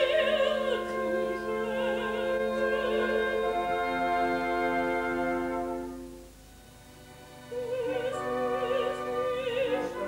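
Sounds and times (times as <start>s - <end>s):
operatic soprano singing: 0.0s - 5.8s, 7.4s - 10.0s
orchestra playing: 0.0s - 10.0s.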